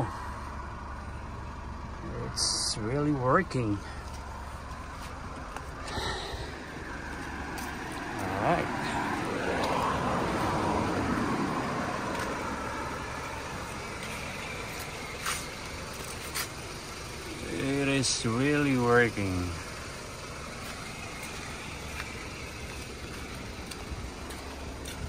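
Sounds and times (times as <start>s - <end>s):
car engine idling: 0.0s - 25.0s
passing vehicle noise: 0.0s - 25.0s.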